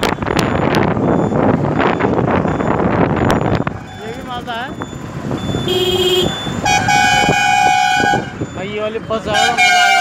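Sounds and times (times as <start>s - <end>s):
road and engine rumble: 0.0s - 10.0s
vehicle horns: 5.4s - 8.5s, 9.2s - 10.0s.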